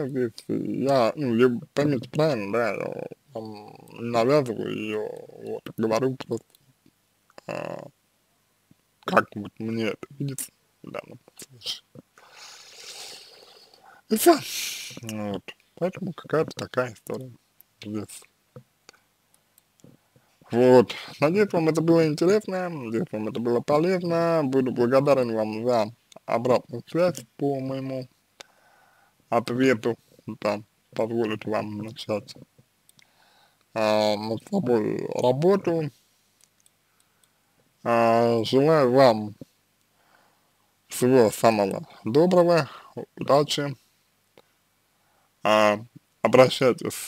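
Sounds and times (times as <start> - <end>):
man speaking: 0.0 - 6.6, 7.4 - 8.0, 9.0 - 18.3, 19.8 - 28.1, 29.3 - 32.5, 33.8 - 36.0, 37.8 - 39.5, 40.9 - 43.8, 45.4 - 47.0
man breathing near microphone: 28.4 - 29.2, 33.0 - 33.6
faint clicks: 32.6 - 33.7, 36.4 - 37.4.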